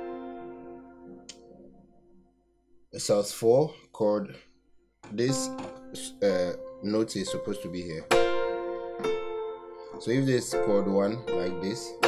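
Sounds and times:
keyboard chord ringing: 0.0 - 2.3, 5.1 - 12.0.

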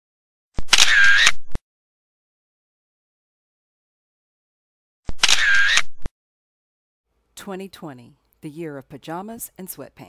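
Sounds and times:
camera shutter clicking and whirring: 0.6 - 1.6, 5.1 - 6.1.

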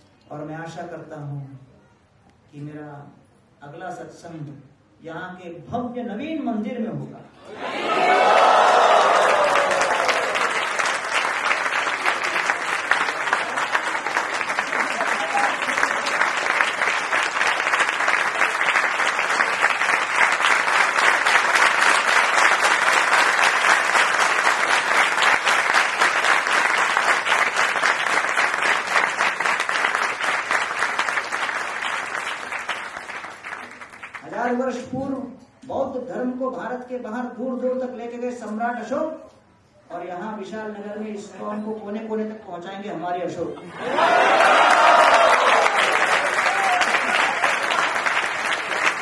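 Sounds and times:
audience applause: 7.6 - 34.2, 43.8 - 49.0.

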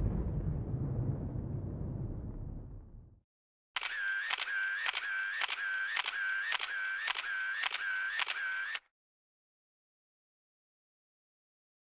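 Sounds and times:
camera shutter clicks and whir: 3.8 - 8.9.

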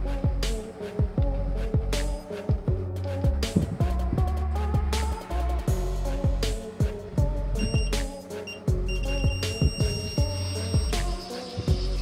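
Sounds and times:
background music with beat: 0.0 - 12.0
high-pitched buzzer beep: 7.6 - 11.0.

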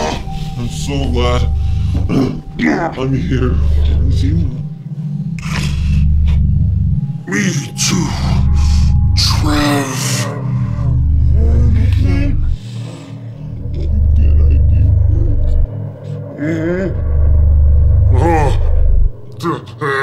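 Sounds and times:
deep throbbing rumble: 0.0 - 19.8
men groaning and gasping: 5.2 - 6.6, 7.7 - 19.1.

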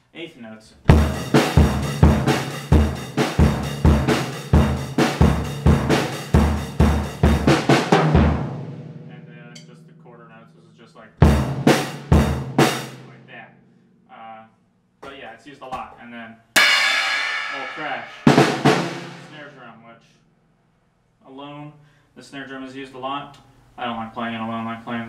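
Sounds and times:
drum hits ringing out: 0.9 - 9.9, 11.2 - 13.1, 16.6 - 19.5
drum kit playing a beat: 0.9 - 10.0, 11.2 - 13.2, 16.6 - 19.5.

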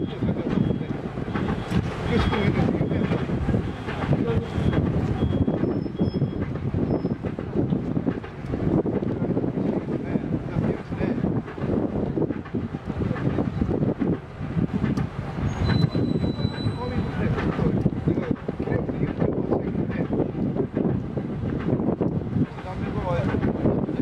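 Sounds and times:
heavy vehicle low rumble: 0.0 - 24.0.

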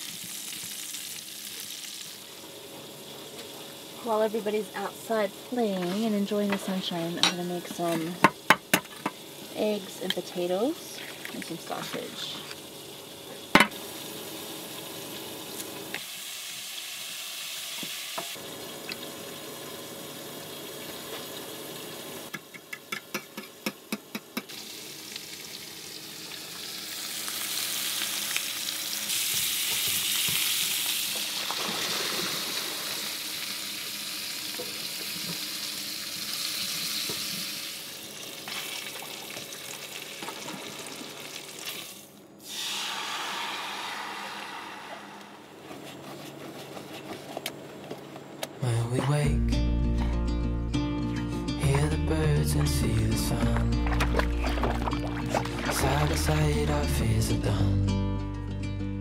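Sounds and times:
food sizzling in a skillet: 0.0 - 40.1, 41.3 - 45.2.

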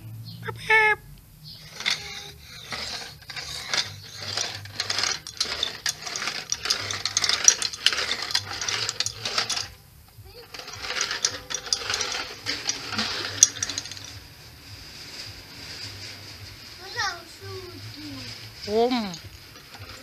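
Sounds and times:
toy wheels clicking rattle: 1.5 - 20.0.

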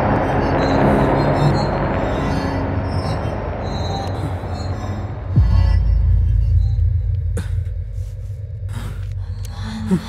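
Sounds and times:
low film score drone: 0.0 - 10.0.

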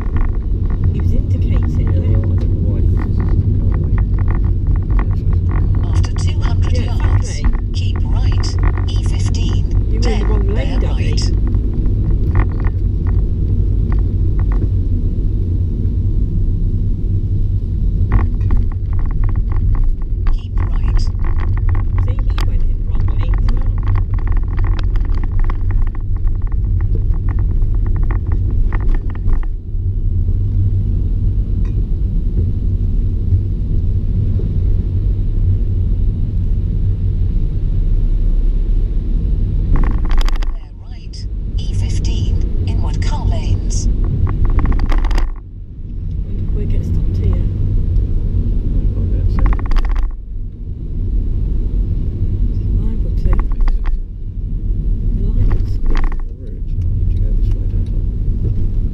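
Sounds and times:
indistinct voices: 0.0 - 11.5, 20.2 - 26.0, 40.3 - 43.9, 46.2 - 47.5
car engine and tyre rumble: 0.0 - 58.9.

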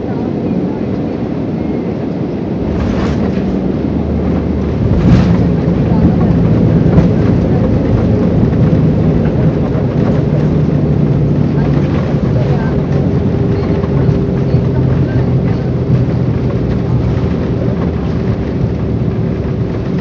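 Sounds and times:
engines and wheels rumbling: 0.0 - 20.0.

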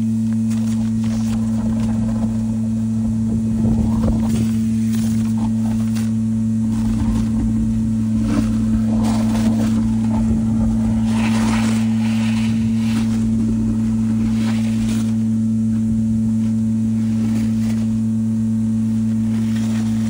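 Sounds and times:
vacuum pump humming: 0.0 - 20.0
suction hose slurping sludge: 3.6 - 15.4.

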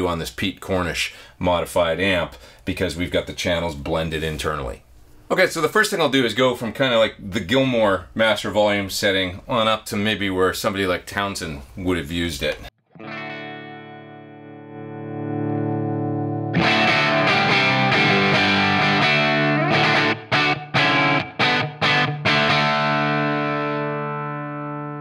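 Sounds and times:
distorted electric guitar chords: 12.8 - 25.0.

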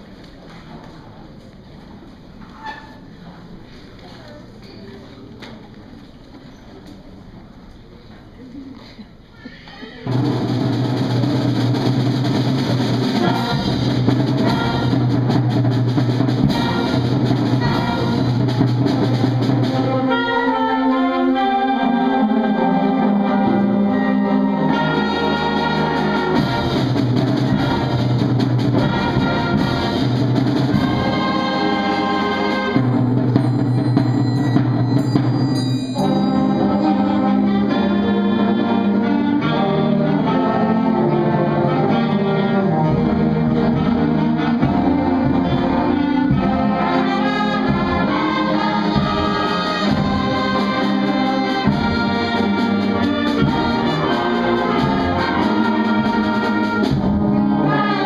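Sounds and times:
concert band playing: 10.0 - 58.0.

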